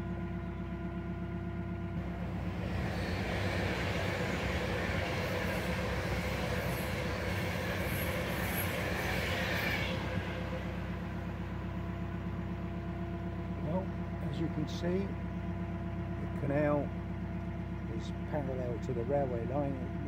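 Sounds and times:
electric train passing: 2.0 - 12.5.

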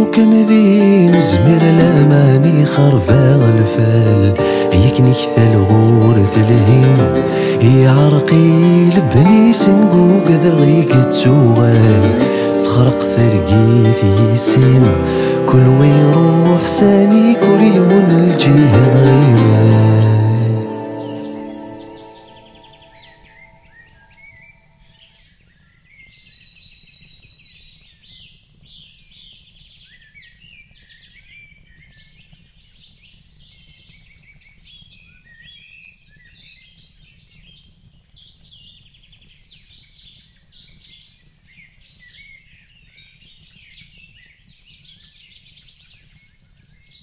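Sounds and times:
music: 0.0 - 24.0.

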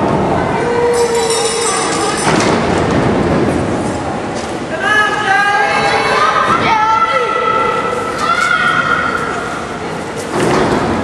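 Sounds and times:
hall background noise: 0.0 - 11.0.

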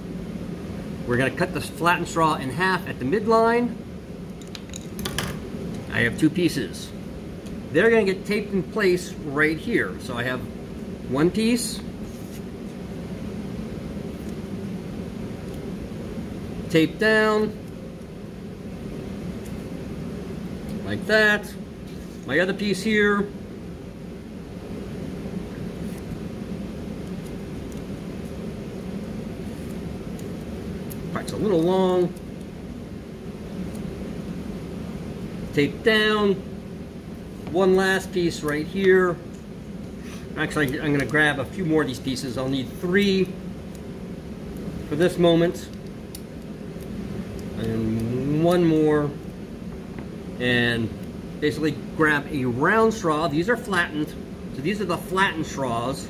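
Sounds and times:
ventilation rumble: 0.0 - 56.0.

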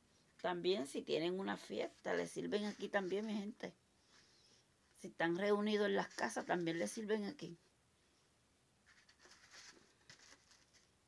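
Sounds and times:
foam containers rustling and scraping: 1.8 - 3.6, 8.9 - 11.0.

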